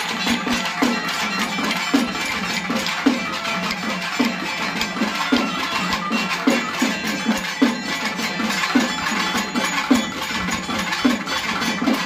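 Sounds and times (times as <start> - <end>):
percussion clatter: 0.0 - 12.0.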